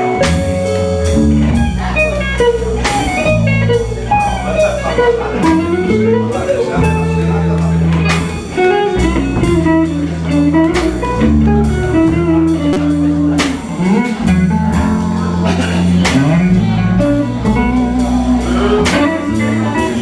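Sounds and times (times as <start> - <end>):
electric guitar lead lines: 0.0 - 20.0
live blues band playing: 0.0 - 20.0.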